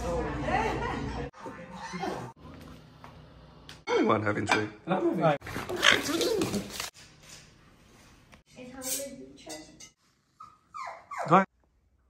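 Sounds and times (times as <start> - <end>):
dog whining: 10.4 - 11.5.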